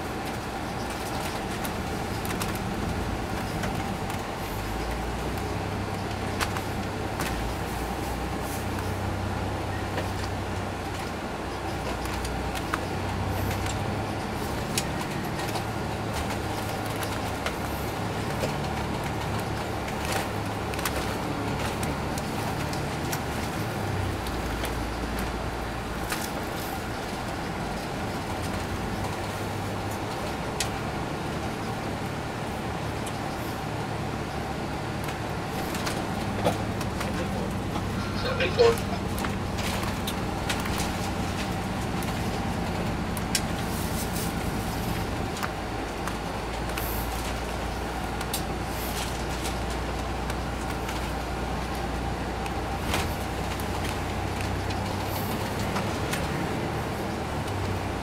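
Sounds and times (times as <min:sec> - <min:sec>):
bus engine rumble: 0:00.0 - 0:58.0
faint steady whine: 0:00.0 - 0:58.0
road noise: 0:00.0 - 0:58.0.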